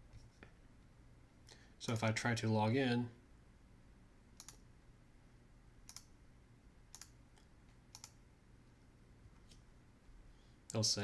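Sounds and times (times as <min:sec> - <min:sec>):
faint computer mouse clicks: 0:04.4 - 0:04.6, 0:05.9 - 0:06.1, 0:06.9 - 0:08.2.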